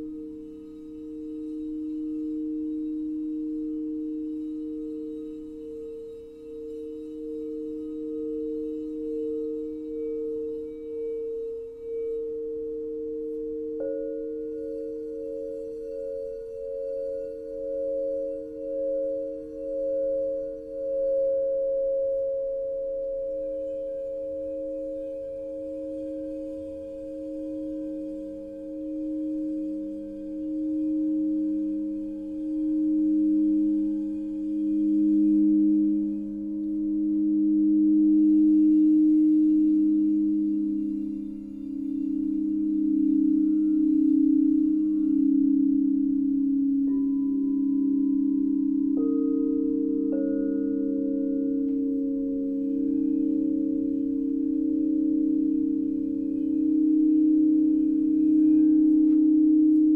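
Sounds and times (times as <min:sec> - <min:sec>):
crystal singing bowl tones: 0:00.0 - 0:59.9.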